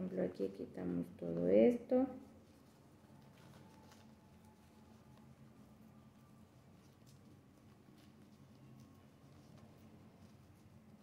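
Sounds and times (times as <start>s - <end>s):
low room hum: 0.0s - 11.0s
paper napkin tearing: 2.6s - 11.0s.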